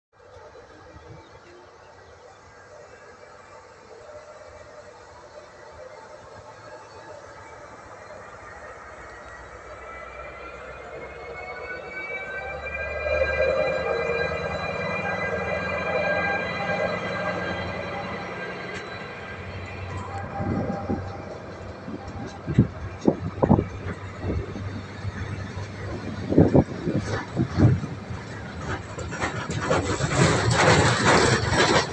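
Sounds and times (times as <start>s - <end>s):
diesel locomotive engine whining: 0.2s - 31.9s
freight wagons rolling: 13.1s - 31.9s.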